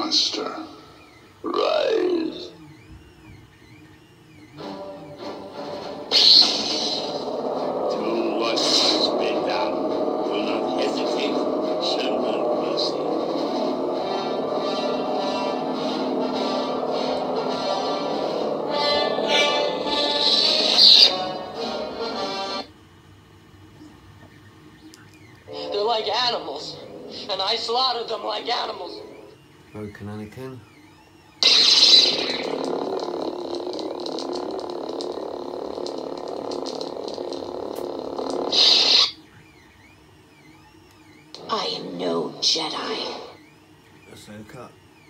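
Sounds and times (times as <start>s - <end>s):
lightsaber igniting and humming: 4.5s - 22.7s, 31.3s - 39.3s.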